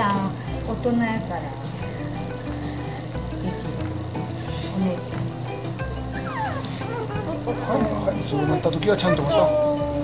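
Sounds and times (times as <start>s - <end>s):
background music: 0.0s - 10.0s
puppy whimpering: 6.1s - 10.0s.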